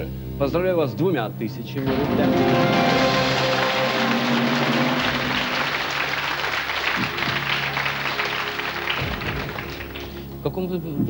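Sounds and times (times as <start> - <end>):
game show music cue: 1.8 - 10.2
studio audience applauding: 1.8 - 10.4.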